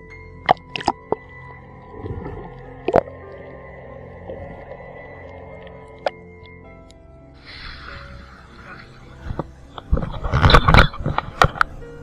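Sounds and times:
water splashing: 0.5s - 6.2s.

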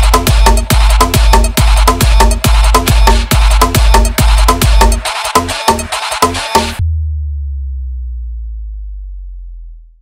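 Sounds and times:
deep synth sub-bass note: 6.7s - 10.0s.

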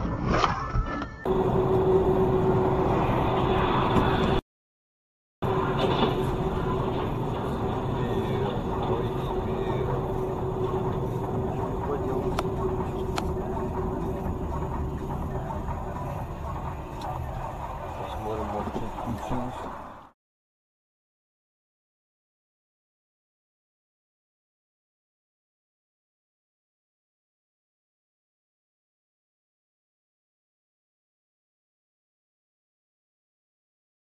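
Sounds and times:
car road and engine noise: 1.3s - 4.4s, 5.4s - 20.1s
voices in car: 5.5s - 19.9s.

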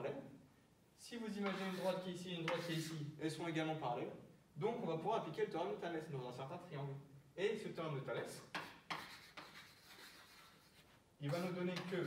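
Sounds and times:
chalk tapping on blackboard: 1.4s - 2.9s, 8.4s - 12.0s
chalk scratching on blackboard: 1.4s - 3.1s, 8.4s - 12.0s.

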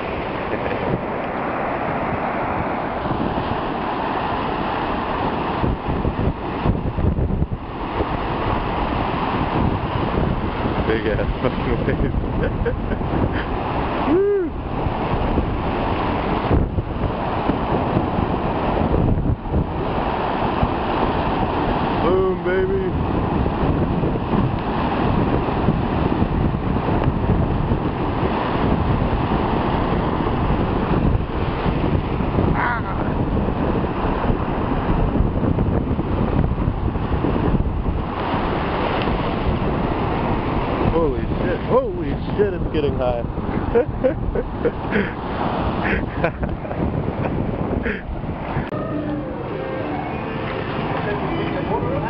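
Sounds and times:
ocean surf breaking: 0.0s - 52.0s
wind buffeting microphone: 0.0s - 52.0s.

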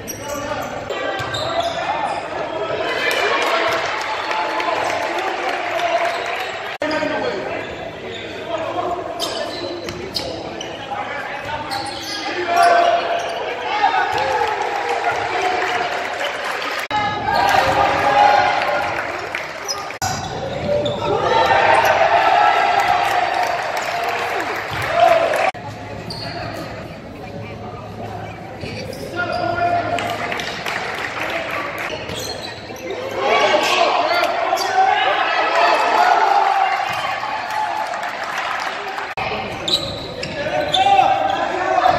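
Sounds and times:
players and spectators shouting: 10.8s - 25.6s, 32.8s - 39.5s, 40.3s - 41.9s.

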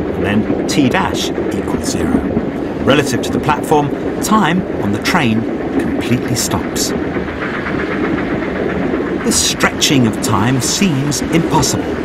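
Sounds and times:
train rushing: 0.0s - 12.0s.

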